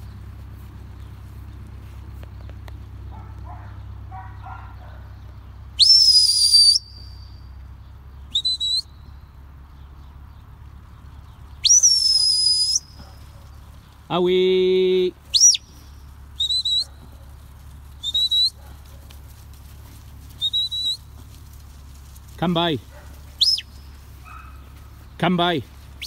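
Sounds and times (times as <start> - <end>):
rising shepherd whistle: 5.8 - 7.4, 8.3 - 9.1, 11.6 - 13.0, 15.3 - 15.8, 16.4 - 17.0, 18.0 - 18.6, 20.4 - 21.1, 23.4 - 23.9
short whistle pips: 5.8 - 7.4, 8.3 - 8.9, 11.6 - 13.0, 15.3 - 15.8, 16.4 - 17.0, 18.0 - 18.6, 20.4 - 21.1, 23.4 - 23.8.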